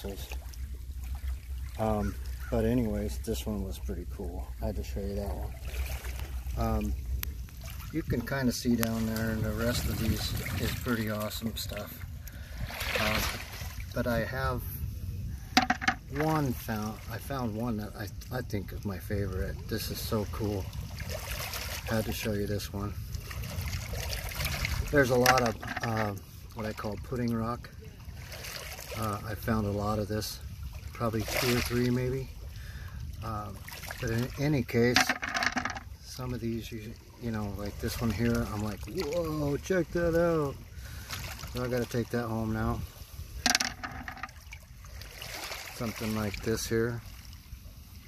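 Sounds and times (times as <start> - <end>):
lake water washing on shore: 0.0 - 48.0
beach stones clattering: 15.6 - 16.1, 25.2 - 26.0, 34.9 - 35.9, 43.4 - 44.3.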